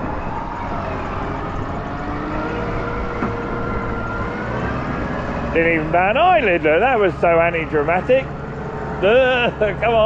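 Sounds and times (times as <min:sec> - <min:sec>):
tractor engines rumbling under load: 0:00.0 - 0:10.0
whining engine tones: 0:00.0 - 0:10.0.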